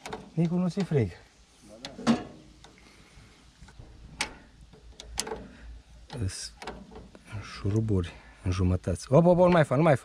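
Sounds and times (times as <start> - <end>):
wrench clicking and scraping: 3.6 - 7.2.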